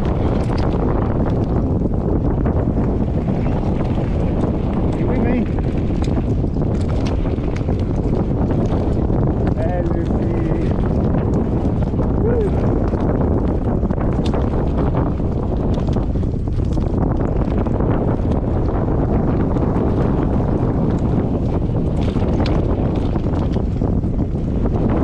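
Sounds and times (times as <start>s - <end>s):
bike rattling clicks and knocks: 0.0s - 25.0s
wind buffeting microphone: 0.0s - 25.0s.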